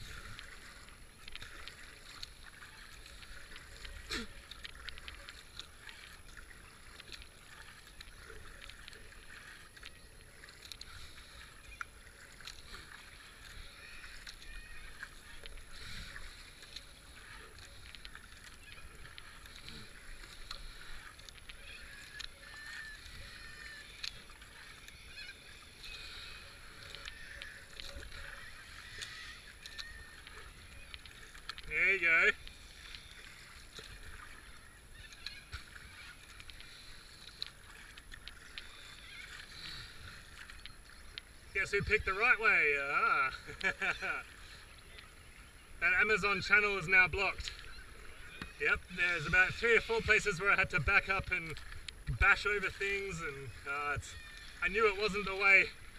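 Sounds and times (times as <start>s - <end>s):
kayak paddle strokes: 0.0s - 55.9s
water splashing along hull: 0.0s - 55.9s.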